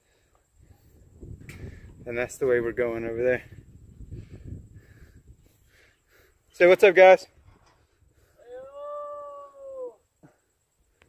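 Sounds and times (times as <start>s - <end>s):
long howl: 8.4s - 10.1s.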